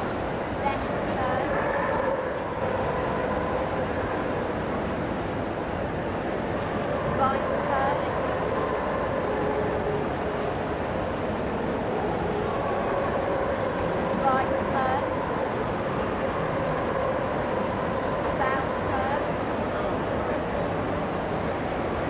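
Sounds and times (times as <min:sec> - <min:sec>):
crowd murmur in a large hall: 0:00.0 - 0:22.0.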